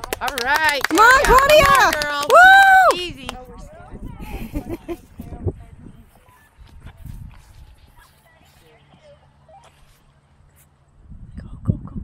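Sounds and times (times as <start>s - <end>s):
faint voices: 0.0s - 10.7s.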